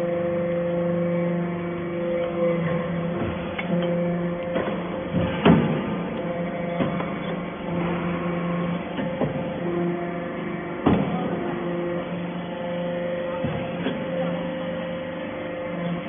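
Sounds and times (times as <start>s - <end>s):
machine humming: 0.0s - 16.0s.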